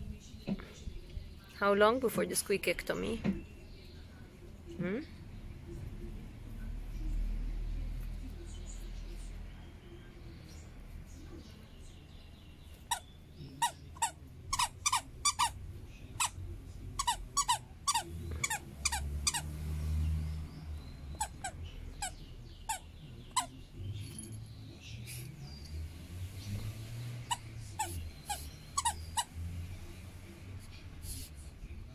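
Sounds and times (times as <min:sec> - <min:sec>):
toy squeaker squeaking: 0:12.9 - 0:15.6, 0:17.0 - 0:19.4, 0:21.1 - 0:23.5, 0:27.2 - 0:29.3.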